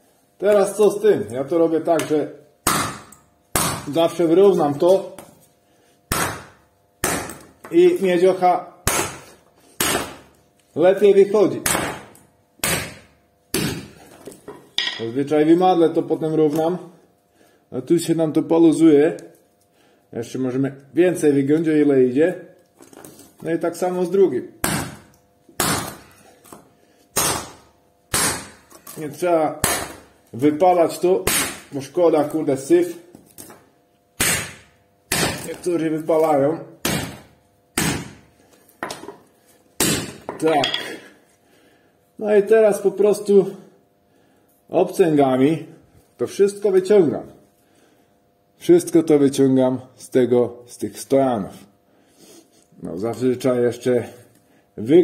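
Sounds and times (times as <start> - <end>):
metal part set down on concrete: 14.5 - 15.1
hammer striking steel: 14.8 - 15.1.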